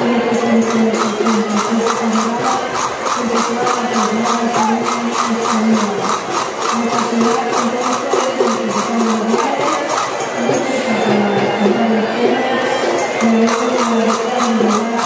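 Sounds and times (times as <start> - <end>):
folk melody of held notes: 0.0 - 15.0
tambourine percussion beat: 0.3 - 11.0, 12.9 - 15.0.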